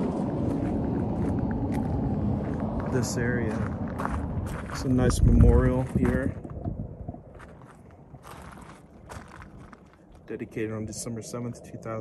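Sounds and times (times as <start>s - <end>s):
footsteps on gravel: 0.0s - 6.6s, 7.3s - 10.3s.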